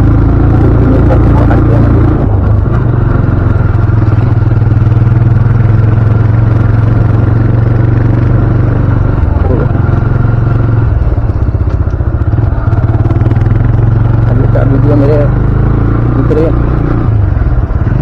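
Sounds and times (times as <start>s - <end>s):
motorcycle engine running: 0.0s - 18.0s.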